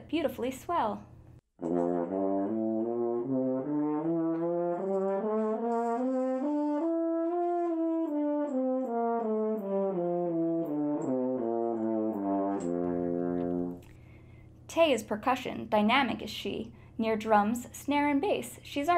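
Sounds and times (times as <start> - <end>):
french horn playing short notes: 1.6 - 13.8.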